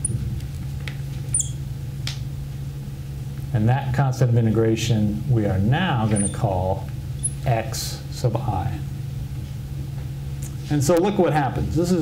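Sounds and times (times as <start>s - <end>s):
marker squeaking on glass: 0.0s - 0.2s, 1.3s - 1.6s, 6.1s - 6.5s, 7.2s - 7.5s
steady low hum: 0.0s - 12.0s
pen tip scratching glass: 1.3s - 1.6s, 6.1s - 6.4s.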